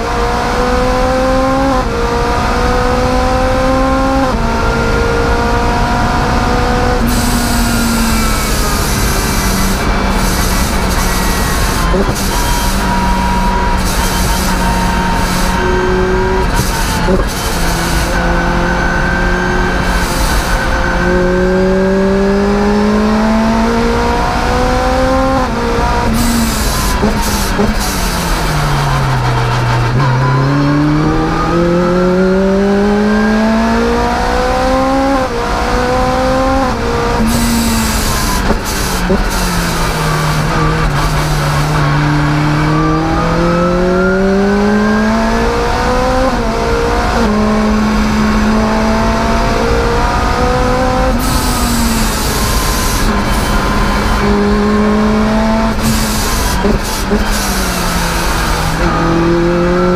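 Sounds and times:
car engine revving at full throttle: 0:00.0 - 0:59.9.

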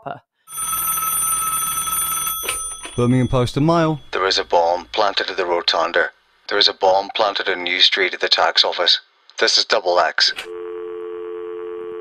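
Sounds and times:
telephone bell ringing: 0:00.5 - 0:04.8
telephone answering click: 0:01.4 - 0:03.2.

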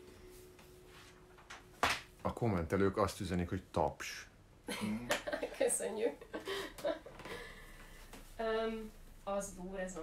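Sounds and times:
person chuckling: 0:04.7 - 0:05.6.

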